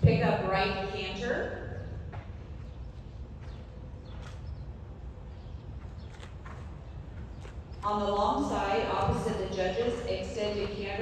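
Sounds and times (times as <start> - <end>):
low background hum: 0.0 - 11.0
muffled hoofbeats on sand: 5.8 - 7.8.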